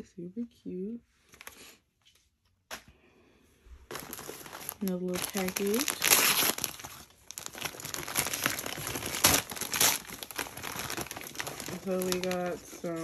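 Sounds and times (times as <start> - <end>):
wrapping paper crinkling: 3.9 - 13.0.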